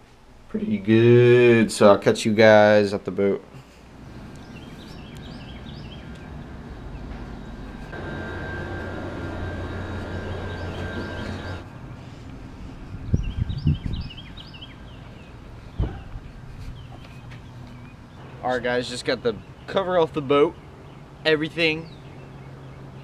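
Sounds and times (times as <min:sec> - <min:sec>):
mechanical hum with thin whine: 0:00.0 - 0:19.8
small birds chirping: 0:04.1 - 0:07.2, 0:07.8 - 0:23.0.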